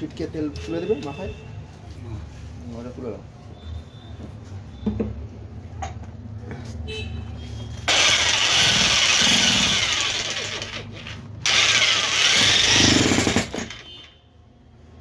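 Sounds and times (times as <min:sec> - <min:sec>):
demolition hammer chiselling brick: 0:07.9 - 0:14.1.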